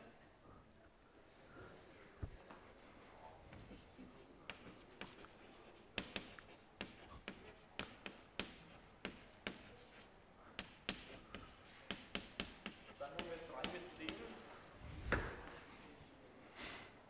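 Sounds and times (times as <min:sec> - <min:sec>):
chalk tapping on blackboard: 0:03.7 - 0:14.4.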